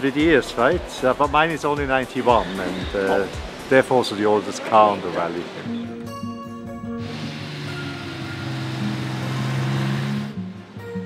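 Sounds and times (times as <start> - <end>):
music with long held notes: 0.0 - 11.0.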